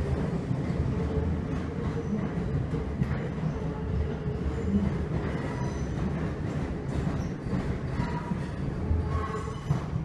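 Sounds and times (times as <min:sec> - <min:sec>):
train wheels rumbling: 0:00.0 - 0:10.0
faint train squeals: 0:01.0 - 0:10.0.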